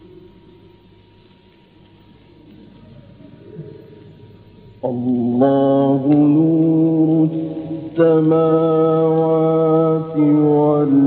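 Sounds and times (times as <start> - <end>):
man chanting melodically: 4.7 - 11.0.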